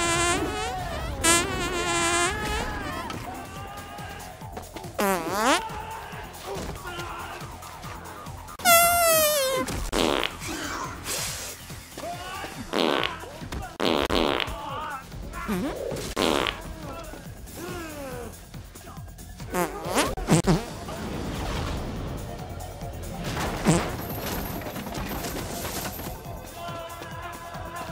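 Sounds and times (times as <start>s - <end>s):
fart sound effects: 0.0s - 3.1s, 5.0s - 5.6s, 8.6s - 11.4s, 12.7s - 13.2s, 13.8s - 14.6s, 15.5s - 16.6s, 19.5s - 20.9s, 23.5s - 24.2s
film score music: 0.0s - 27.9s.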